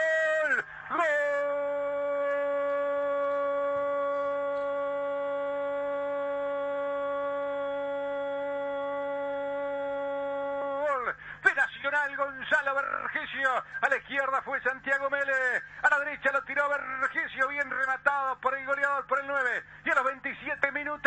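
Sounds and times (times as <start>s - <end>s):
man shouting drawn-out goal cry: 0.0s - 13.7s.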